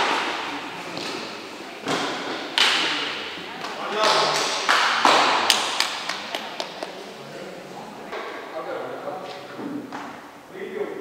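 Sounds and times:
sharp smacks in echoing hall: 0.0s - 3.2s, 4.0s - 6.9s
spectators' voices: 0.0s - 9.9s
hand claps: 3.6s - 7.0s.

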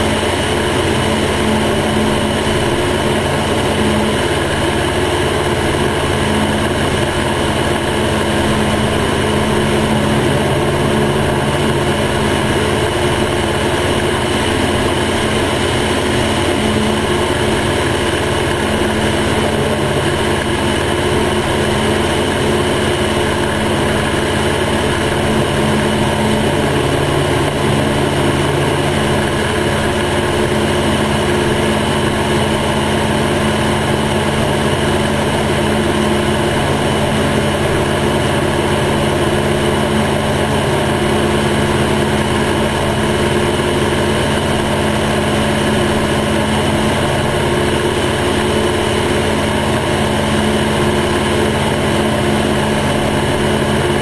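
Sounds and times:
light aircraft engine droning: 0.0s - 54.0s.

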